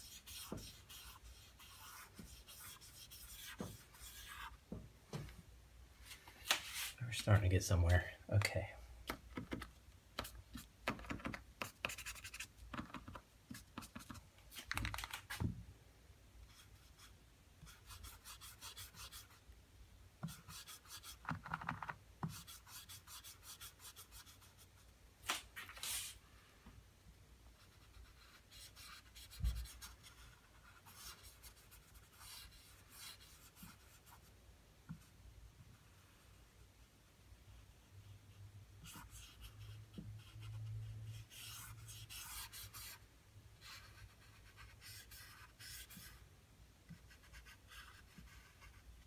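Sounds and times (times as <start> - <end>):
marker nib scratching: 0.0 - 4.5, 10.2 - 14.2, 38.8 - 43.0.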